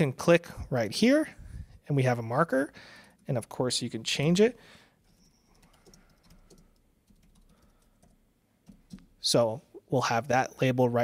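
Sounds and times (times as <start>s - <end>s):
typing on computer keyboard: 5.0s - 9.2s.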